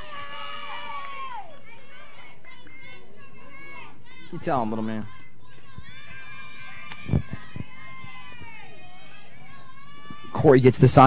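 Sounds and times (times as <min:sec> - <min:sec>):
children shouting and chattering: 0:00.0 - 0:11.0
outdoor background noise: 0:00.0 - 0:11.0.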